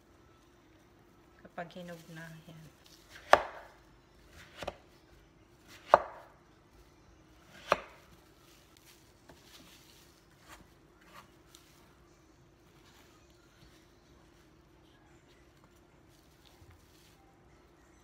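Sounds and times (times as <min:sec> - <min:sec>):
knife slicing melon: 0:03.0 - 0:04.8, 0:05.7 - 0:06.3, 0:07.5 - 0:08.1.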